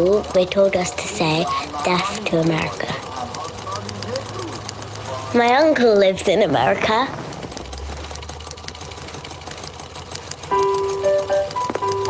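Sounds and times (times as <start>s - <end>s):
faint clicks and crackle: 0.0s - 12.0s.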